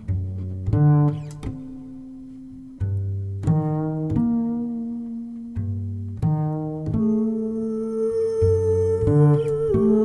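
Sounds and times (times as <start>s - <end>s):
double bass plucked pizzicato: 0.0s - 10.0s.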